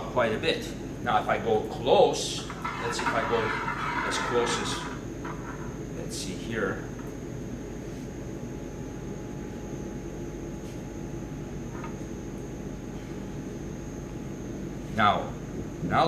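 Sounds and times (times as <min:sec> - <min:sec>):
room hum and hiss: 0:00.0 - 0:16.0.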